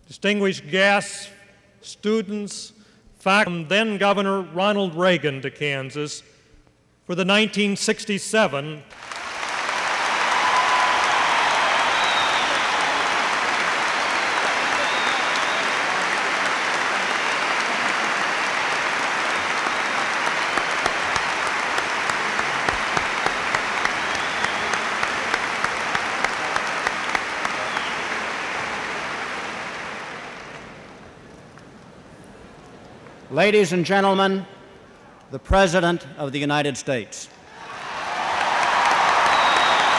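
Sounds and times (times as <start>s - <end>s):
large audience applauding: 8.9s - 31.4s, 37.5s - 39.9s
close sharp clapping: 8.9s - 31.7s, 37.8s - 39.9s.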